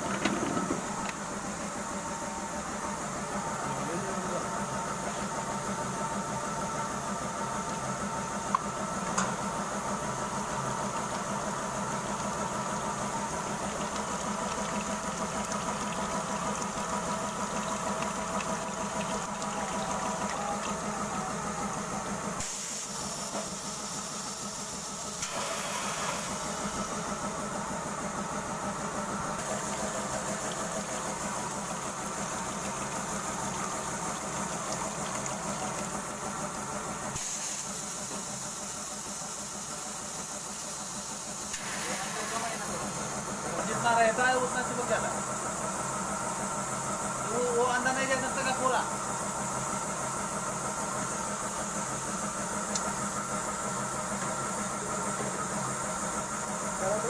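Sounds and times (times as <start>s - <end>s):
machine humming: 0.0s - 40.1s
cooling water hissing: 0.0s - 57.0s.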